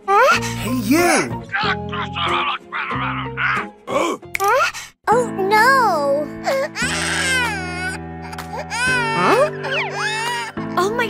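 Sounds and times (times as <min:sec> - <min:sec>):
background music with held notes: 0:00.0 - 0:11.0
child-like crying wail: 0:06.5 - 0:10.5.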